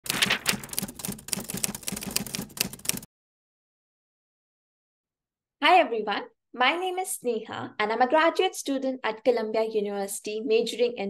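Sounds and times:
typewriter key clacking: 0:00.1 - 0:03.1.

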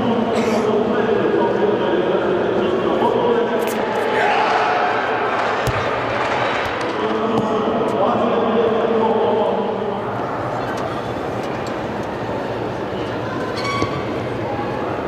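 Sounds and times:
many voices talking in echoing hall: 0:00.0 - 0:15.0.

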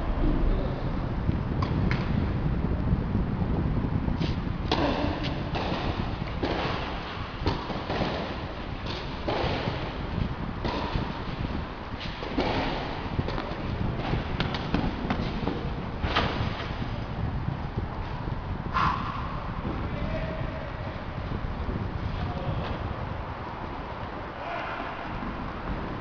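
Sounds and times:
steady low rumble: 0:00.0 - 0:26.0
tennis balls struck and bouncing: 0:04.2 - 0:16.9.

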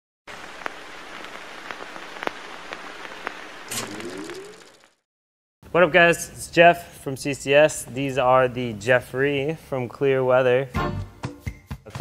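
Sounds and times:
steady rain-like hiss: 0:00.3 - 0:04.9
short rising tone: 0:03.7 - 0:05.0.

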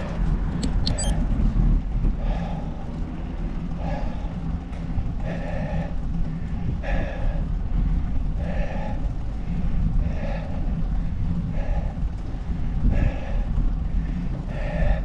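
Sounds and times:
wind and road rumble: 0:00.0 - 0:15.0
sharp clicks: 0:00.5 - 0:01.2.

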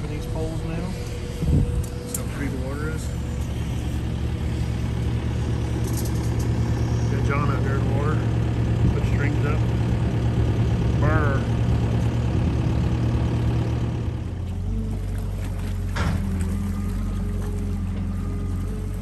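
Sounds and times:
engine running with low hum: 0:00.0 - 0:19.0.

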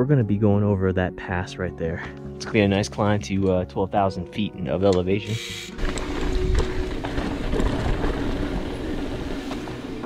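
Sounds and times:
bike tyre noise on dirt: 0:05.7 - 0:10.0
bike clicks and rattles: 0:05.8 - 0:09.8
wind rumble on microphone: 0:05.8 - 0:10.0.

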